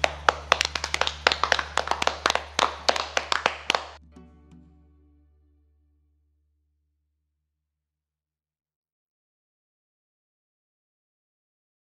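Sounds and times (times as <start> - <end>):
people clapping: 0.0 - 4.0.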